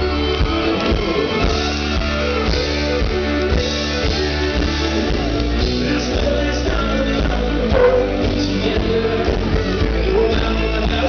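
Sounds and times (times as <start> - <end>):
guitars: 0.0 - 11.0
drum kit beat: 3.1 - 9.0.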